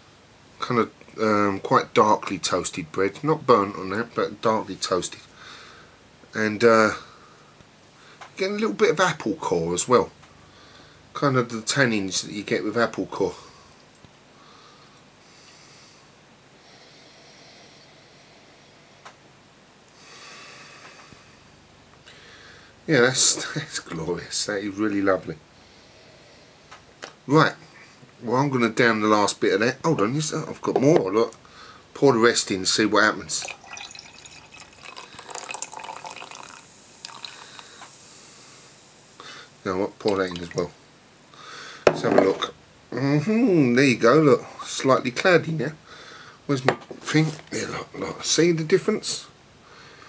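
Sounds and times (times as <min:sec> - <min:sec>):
soft nasal breathing: 0:10.4 - 0:11.1, 0:13.4 - 0:19.2, 0:19.9 - 0:22.8, 0:25.5 - 0:26.9, 0:31.4 - 0:31.9, 0:36.8 - 0:39.6, 0:41.3 - 0:41.9, 0:45.8 - 0:46.5, 0:49.6 - 0:50.0
beer pouring into glass: 0:33.2 - 0:37.8.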